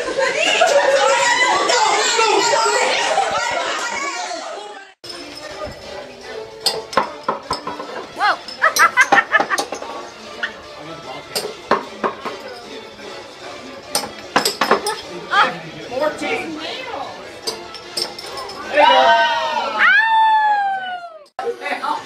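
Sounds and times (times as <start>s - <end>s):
glass bottles clinking: 5.0s - 10.6s, 11.2s - 12.9s, 13.9s - 15.1s, 17.4s - 18.8s.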